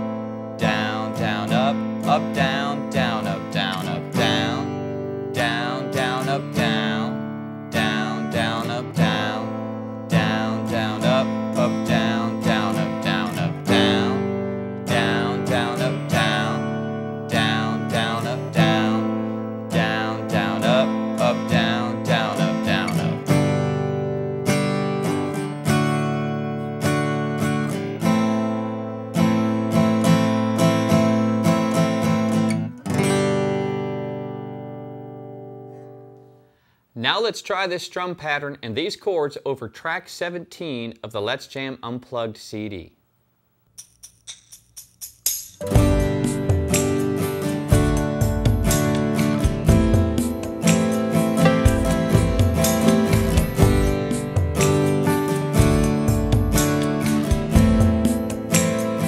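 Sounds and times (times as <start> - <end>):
acoustic guitar strumming: 0.0 - 37.3, 43.8 - 59.0.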